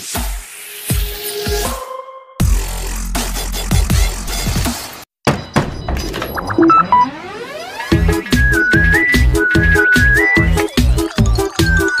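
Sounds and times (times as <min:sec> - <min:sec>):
clicks and high blips: 0:05.8 - 0:12.0
electronic music: 0:06.2 - 0:12.0.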